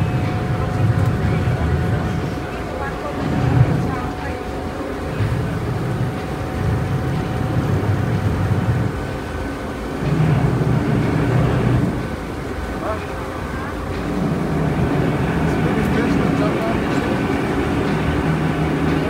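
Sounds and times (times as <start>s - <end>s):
boat engine droning: 0.0s - 19.0s
water rushing past hull: 0.0s - 19.0s.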